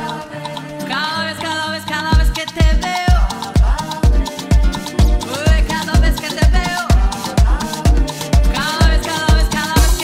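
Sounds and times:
house music: 0.0s - 10.0s
latin percussion: 0.0s - 10.0s
kick drum: 2.2s - 10.0s.

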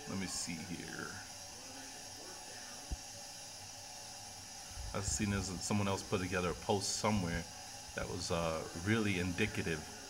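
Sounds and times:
room tone hiss: 0.0s - 10.0s.

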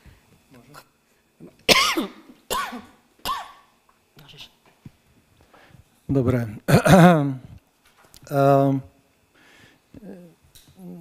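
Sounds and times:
person coughing: 1.7s - 3.7s, 6.7s - 7.2s.

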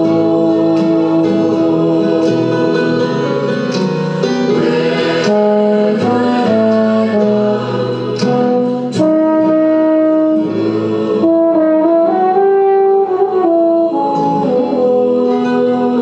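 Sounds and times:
euphonium playing hymn melody: 0.0s - 16.0s.

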